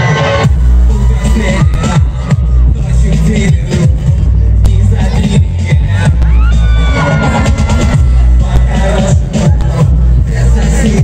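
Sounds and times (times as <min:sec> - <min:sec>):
loud amplified pop music: 0:00.0 - 0:11.0.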